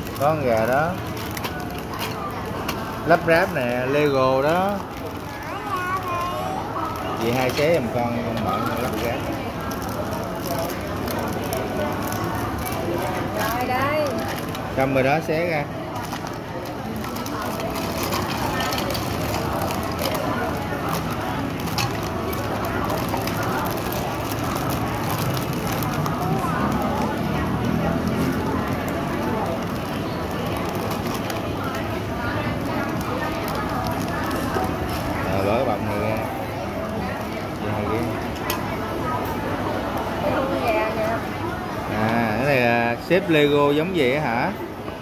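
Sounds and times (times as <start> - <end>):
plastic bag crinkling: 0.0 - 38.3
background chatter: 0.0 - 45.0.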